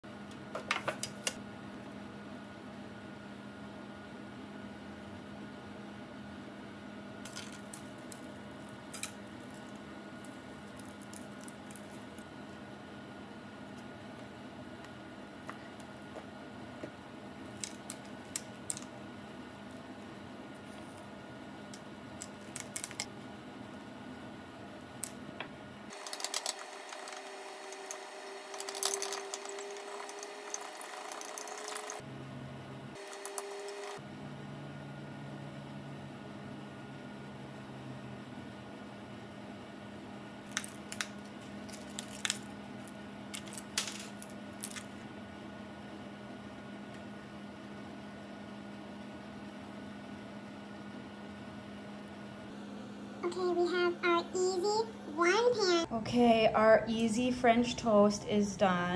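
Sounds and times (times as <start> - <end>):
faint room hum: 0.0 - 58.9.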